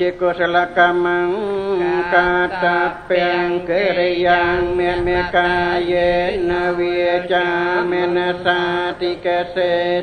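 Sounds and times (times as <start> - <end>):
monk chanting into a microphone: 0.0 - 10.0.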